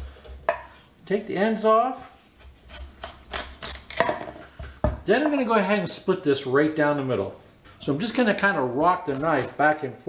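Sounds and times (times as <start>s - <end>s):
knife crunching through squash: 2.6s - 4.1s, 9.0s - 9.6s.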